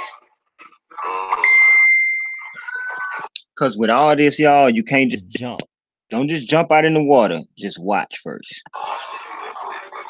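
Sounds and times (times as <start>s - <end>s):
electronic beep tone: 1.4s - 3.1s.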